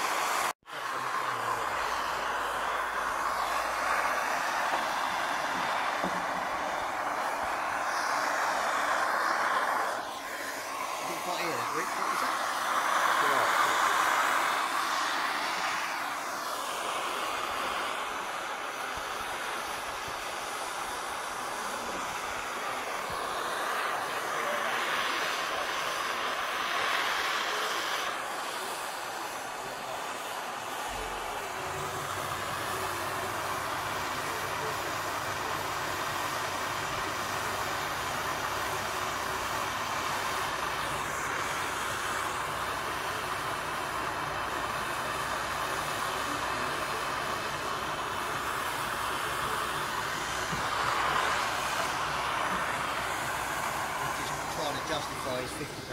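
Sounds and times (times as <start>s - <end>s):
gas torch hissing: 0.0s - 55.9s.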